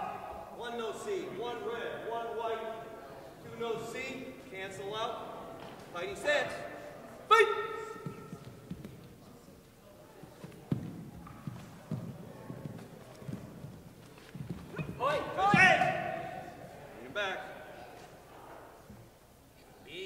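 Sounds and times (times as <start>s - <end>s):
person shouting: 7.3s - 8.0s
bare feet thumping on wooden floor: 10.5s - 16.2s.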